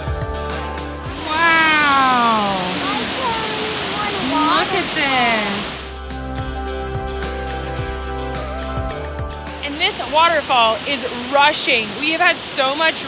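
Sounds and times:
background music: 0.0s - 12.4s
waterfall roaring: 1.1s - 6.0s, 9.7s - 13.0s.

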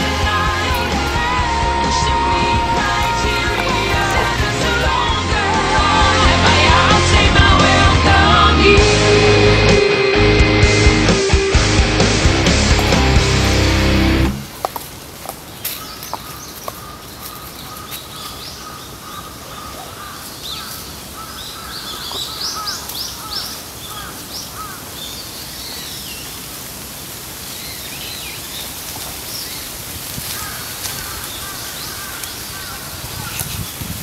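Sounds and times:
birds calling: 0.0s - 6.6s, 11.5s - 26.5s, 27.5s - 34.0s.

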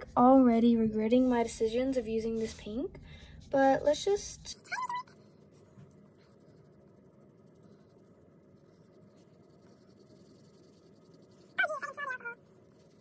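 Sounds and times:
marker rubbing on paper: 4.7s - 13.0s.

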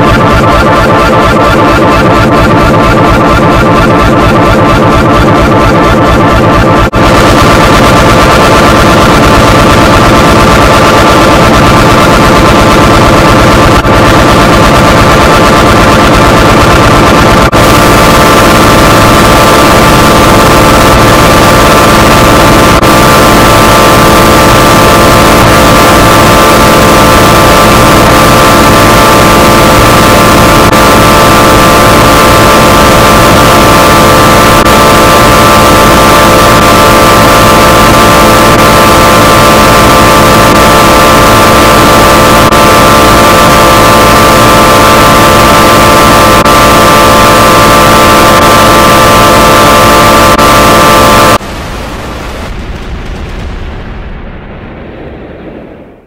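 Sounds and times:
heavily distorted soundtrack: 0.0s - 56.0s.

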